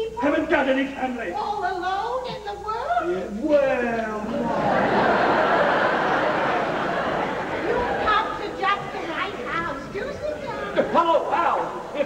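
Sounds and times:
actors talking: 0:00.0 - 0:12.0.

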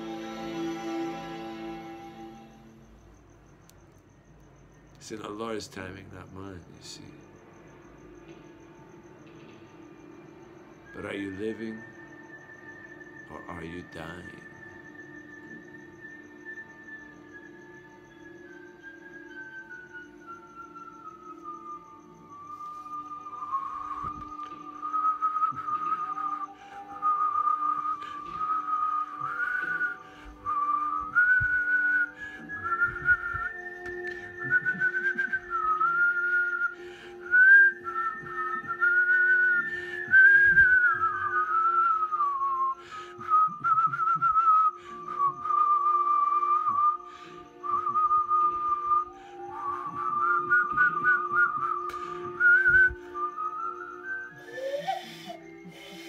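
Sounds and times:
man whistling a tune: 0:10.7 - 0:56.0.

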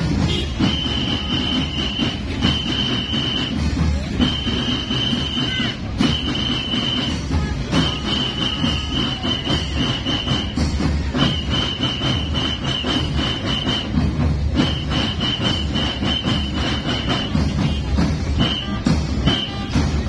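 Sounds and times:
snare and bass drums marching beat: 0:00.0 - 0:20.0.

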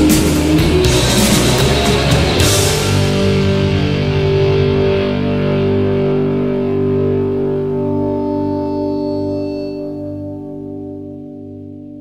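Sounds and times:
distorted electric guitar chord: 0:00.0 - 0:12.0.

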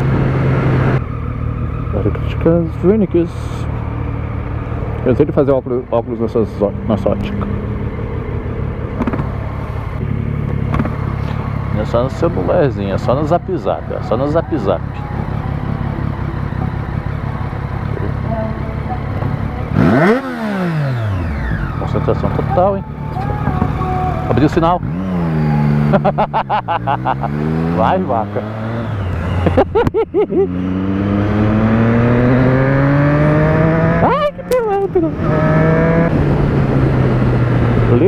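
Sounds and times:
motorcycle engine running: 0:00.0 - 0:38.0.

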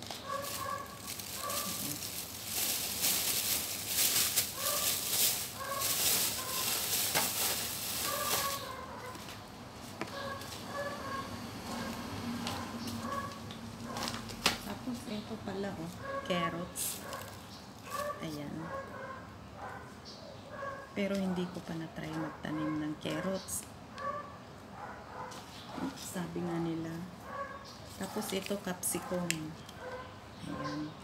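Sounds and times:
paper packets and plastic bag rustling: 0:00.0 - 0:10.9, 0:11.8 - 0:18.5, 0:27.8 - 0:29.3.

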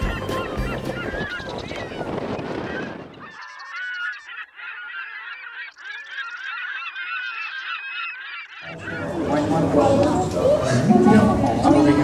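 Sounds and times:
gulls squawking: 0:00.0 - 0:12.0.

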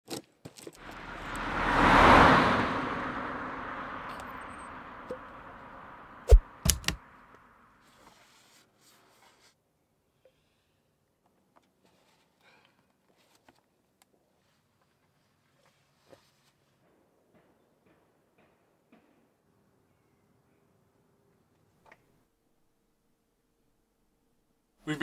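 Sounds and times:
whoosh sound effect: 0:00.8 - 0:07.0
sharp hits: 0:00.8 - 0:07.3.

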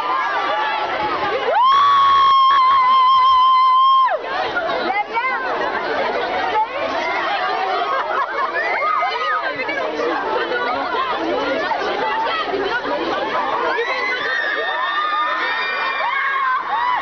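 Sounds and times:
crowd shouting and screaming: 0:00.0 - 0:17.0.

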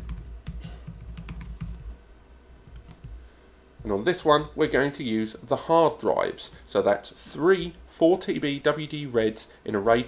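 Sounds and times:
laptop keyboard typing: 0:00.0 - 0:02.0, 0:02.6 - 0:03.2.

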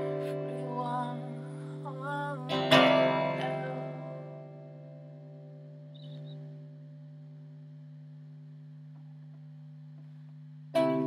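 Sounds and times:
electric guitar amplifier hum: 0:00.0 - 0:11.0.

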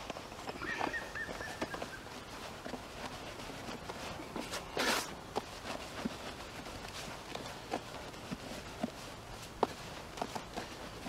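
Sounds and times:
rustling crunch in bucket: 0:00.0 - 0:11.0.

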